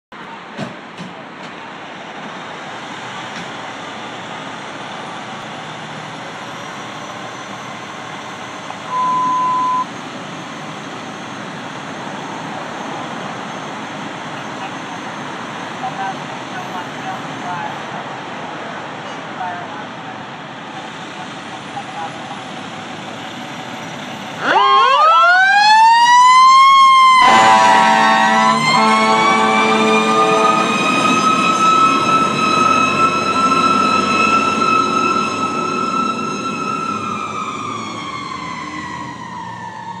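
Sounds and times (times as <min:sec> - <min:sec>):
fire truck siren wailing: 0:24.2 - 0:40.0
air horn blasts: 0:27.2 - 0:30.7.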